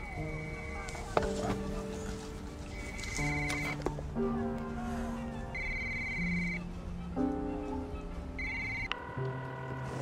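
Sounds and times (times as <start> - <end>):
soft background music: 0.0 - 10.0
telephone ringing tone: 5.6 - 6.6, 8.4 - 10.0.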